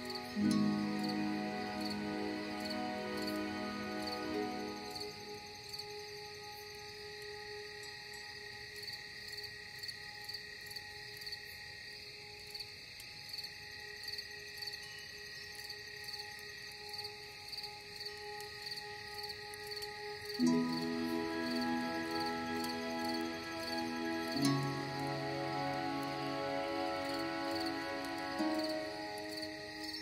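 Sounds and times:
ambient meditation music: 0:00.0 - 0:30.0
crickets chirping: 0:00.0 - 0:30.0.

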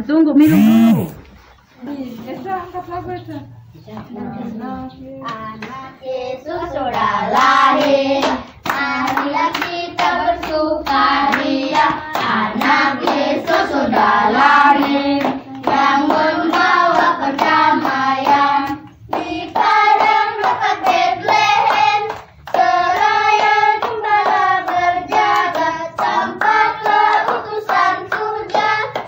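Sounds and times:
children and women singing: 0:03.9 - 0:29.0.

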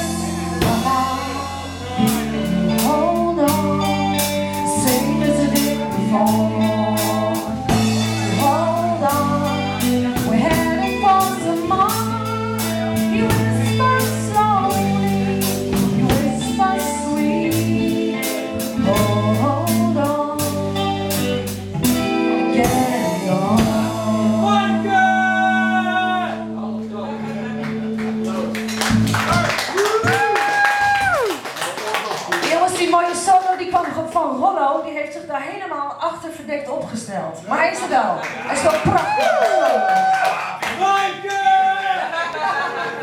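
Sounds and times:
drum kit steady beat: 0:00.0 - 0:24.5
woman singing lead: 0:00.0 - 0:26.2
electric keyboard: 0:00.0 - 0:30.6
bass guitar: 0:00.0 - 0:31.3
electric guitar: 0:00.0 - 0:31.3.

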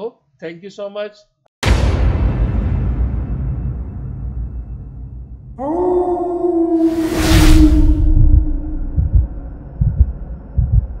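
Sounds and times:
whoosh: 0:06.7 - 0:10.3
deep low thumps: 0:07.4 - 0:11.0.

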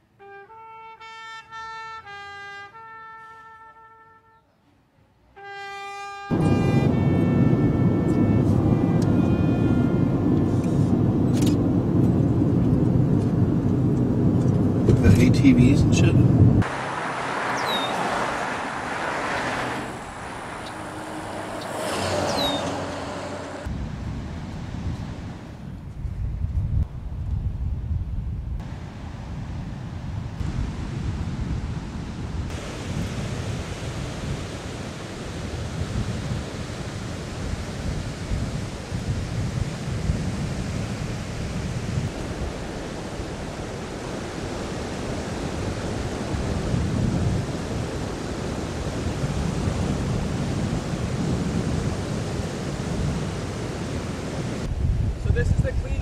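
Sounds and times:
wind buffeting microphone: 0:06.3 - 0:56.0.

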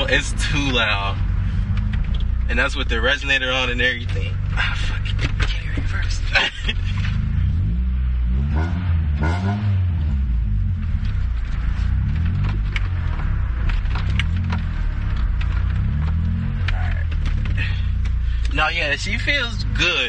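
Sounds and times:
car engine and exhaust revving: 0:00.0 - 0:20.0.

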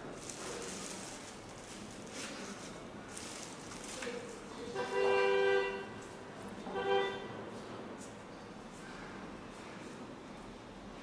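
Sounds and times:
vehicle horn honking: 0:04.7 - 0:06.0, 0:06.7 - 0:07.4.

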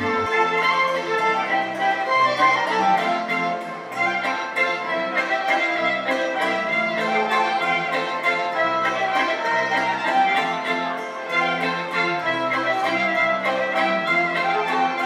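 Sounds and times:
fiddle-led folk band music: 0:00.0 - 0:15.0.

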